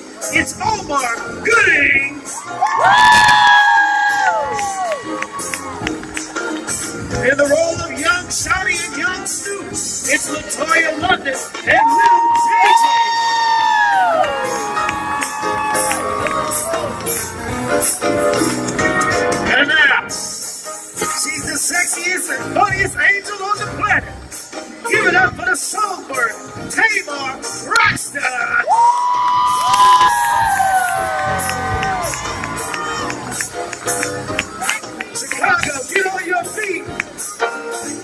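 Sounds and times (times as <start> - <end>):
live music with held notes: 0.0 - 38.0
audience cheering: 2.4 - 6.0, 11.7 - 17.5, 28.7 - 33.4
long high screams: 11.8 - 16.9, 28.7 - 33.0.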